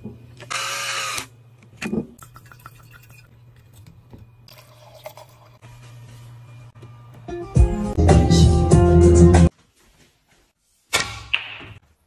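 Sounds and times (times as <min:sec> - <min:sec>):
wine pouring into a glass: 0:02.2 - 0:03.3, 0:04.5 - 0:05.6.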